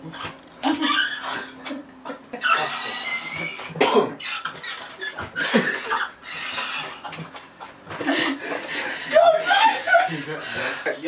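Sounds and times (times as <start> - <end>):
group of people laughing: 0.6 - 3.4, 4.5 - 11.0.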